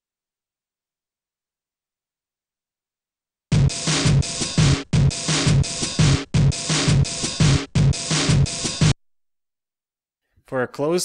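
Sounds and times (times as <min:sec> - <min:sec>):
breakbeat drum loop: 0:03.5 - 0:09.0.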